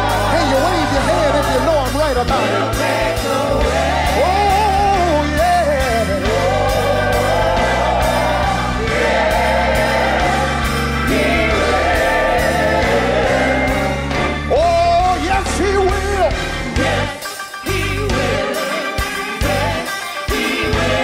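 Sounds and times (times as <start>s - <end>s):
person singing gospel: 0.0s - 21.0s.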